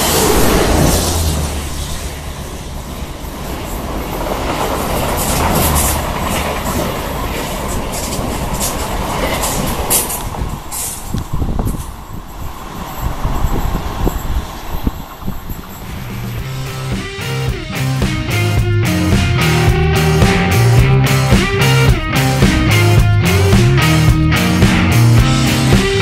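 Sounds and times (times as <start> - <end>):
train wheels rushing on rail: 0.0 - 26.0.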